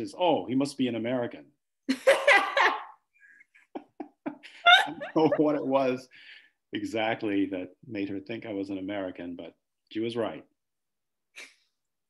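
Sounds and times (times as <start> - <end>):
high-pitched laugh: 1.9 - 3.0, 4.7 - 5.6
people chuckling: 3.6 - 5.8.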